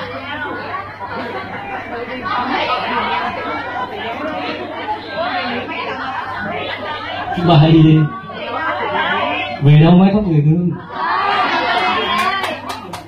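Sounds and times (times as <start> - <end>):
people talking at once: 0.0 - 13.0.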